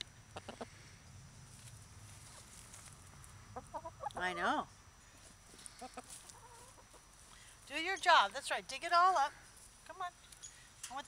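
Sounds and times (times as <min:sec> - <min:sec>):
hens clucking: 0:00.3 - 0:00.8, 0:03.2 - 0:04.6, 0:05.2 - 0:07.2.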